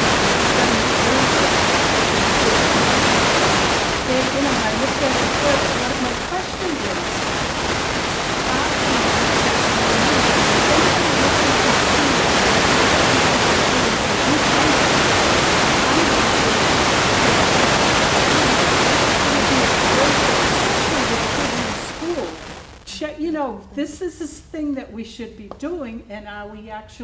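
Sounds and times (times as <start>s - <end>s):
woman's voice: 0.0s - 7.2s, 8.3s - 27.0s
loud static hiss: 0.0s - 23.4s.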